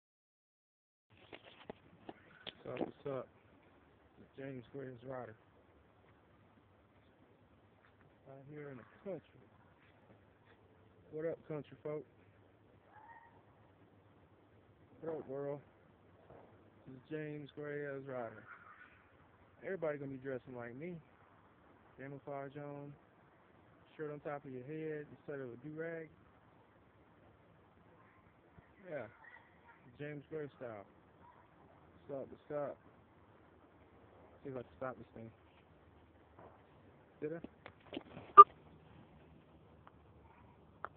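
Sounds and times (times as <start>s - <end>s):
faint animal call: 12.8s - 13.6s, 18.3s - 19.2s.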